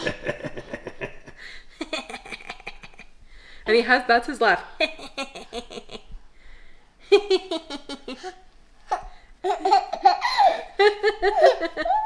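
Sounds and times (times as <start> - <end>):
adults laughing: 0.0 - 1.4
baby laughing: 7.5 - 12.0.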